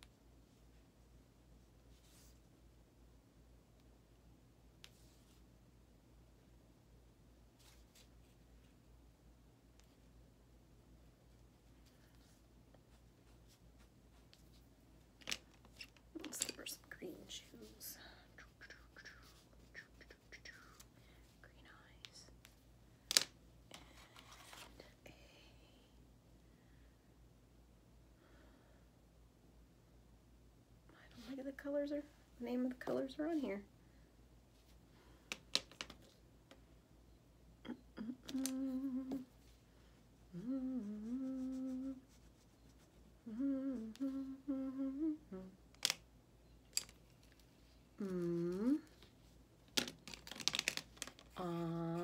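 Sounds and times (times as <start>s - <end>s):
woman humming a tune: 37.6s - 39.4s, 40.3s - 42.2s, 43.2s - 45.6s, 48.0s - 49.0s, 51.4s - 52.0s.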